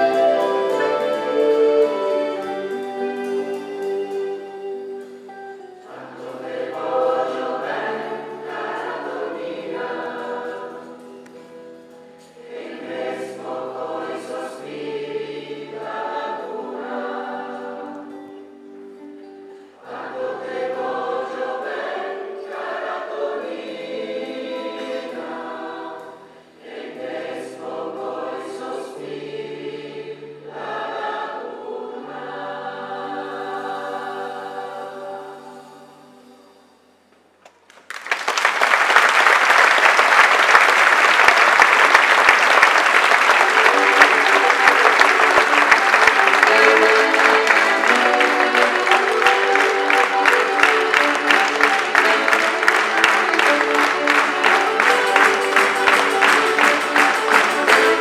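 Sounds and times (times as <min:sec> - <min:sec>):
mixed choir singing: 0:00.0 - 0:05.1, 0:05.8 - 0:18.6, 0:19.7 - 0:36.8, 0:40.1 - 0:58.0.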